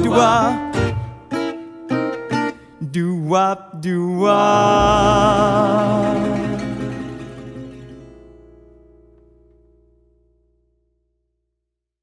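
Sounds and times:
acoustic guitars final chord: 0:04.2 - 0:10.2.

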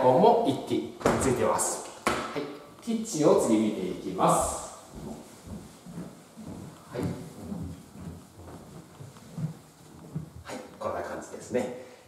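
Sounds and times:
footsteps on floor: 0:02.0 - 0:11.2.

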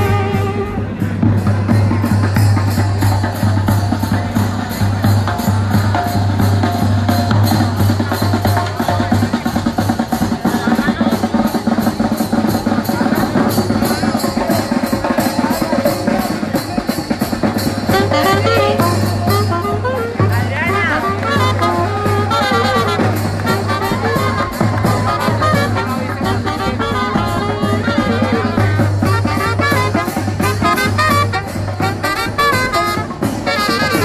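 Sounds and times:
trumpets and saxophone melody: 0:00.0 - 0:01.8, 0:13.4 - 0:34.0
bass drum and snare beat: 0:00.0 - 0:34.0
street brass band playing: 0:00.0 - 0:34.0.

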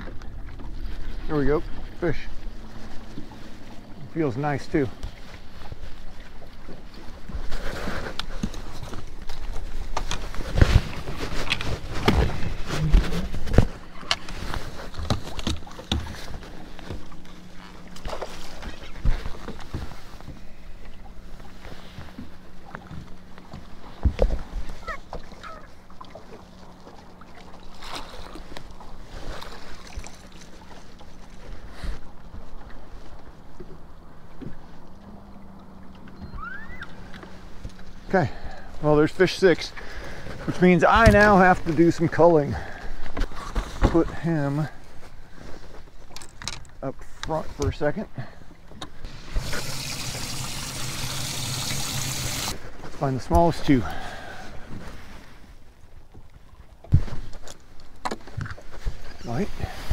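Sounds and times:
steady low hum: 0:00.0 - 0:46.1
fabric rubbing on microphone: 0:10.4 - 0:13.7.

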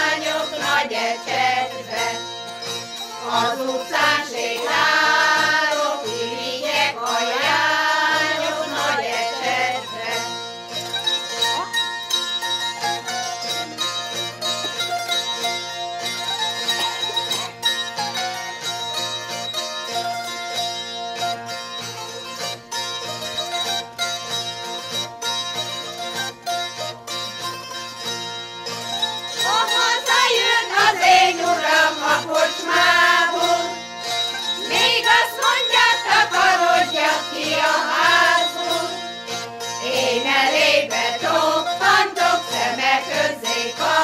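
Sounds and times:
choir singing: 0:00.0 - 0:02.3, 0:03.2 - 0:10.3, 0:29.4 - 0:33.8, 0:34.6 - 0:39.1, 0:39.8 - 0:44.0
plucked zither folk tune: 0:00.0 - 0:44.0.

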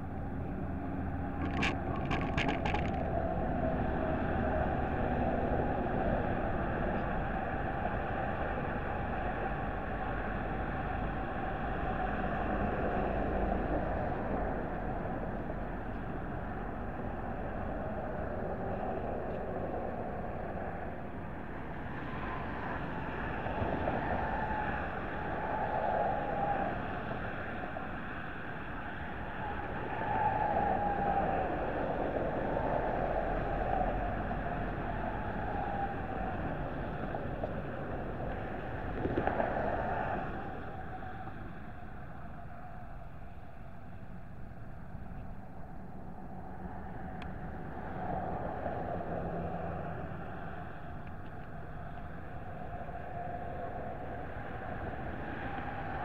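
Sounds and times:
road traffic: 0:00.0 - 0:56.0
wind: 0:00.0 - 0:56.0.

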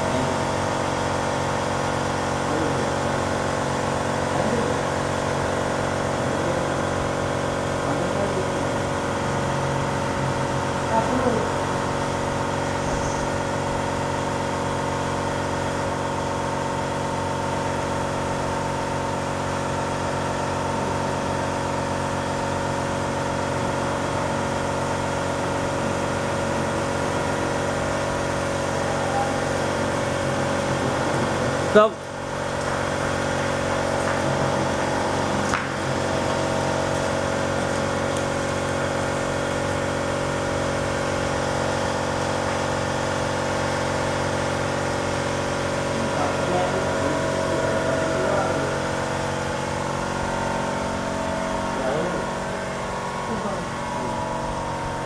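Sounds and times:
steady mechanical drone: 0:00.0 - 0:55.0.

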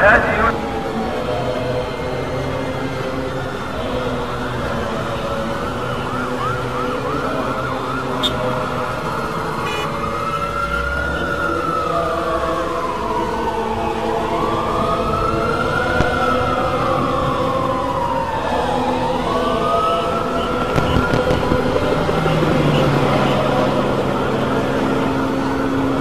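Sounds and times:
background noise: 0:00.0 - 0:21.6
siren wailing: 0:00.0 - 0:26.0.

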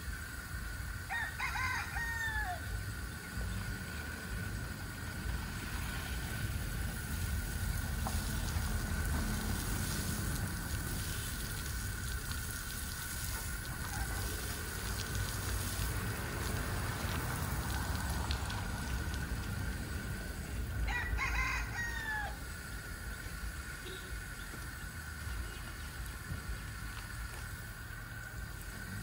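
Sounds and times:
rooster crowing: 0:01.1 - 0:02.8, 0:20.8 - 0:22.6
shower spray hissing: 0:02.8 - 0:20.9, 0:22.3 - 0:29.0.

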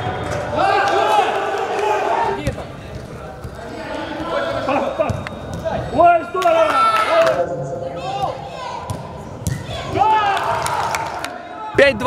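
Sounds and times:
players shouting: 0:00.0 - 0:02.7, 0:03.6 - 0:12.0.

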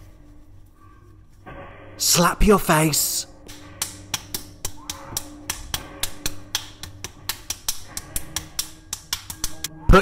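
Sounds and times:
rapid sharp smacks: 0:03.5 - 0:09.7.

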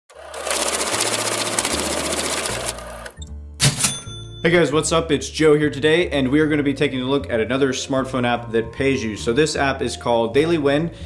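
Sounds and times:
fast mechanical rattle: 0:00.1 - 0:03.2.

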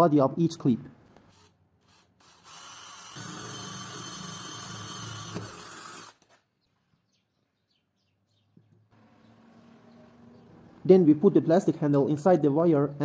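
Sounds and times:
cordless drill drilling metal: 0:01.1 - 0:06.4.

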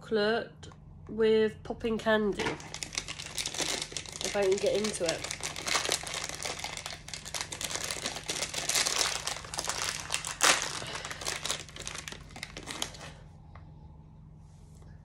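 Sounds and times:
plastic wrapper crackling: 0:02.3 - 0:13.2.

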